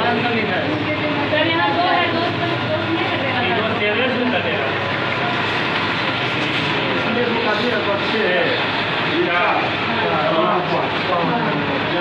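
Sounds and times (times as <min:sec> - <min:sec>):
loud rushing background noise: 0:00.0 - 0:12.0.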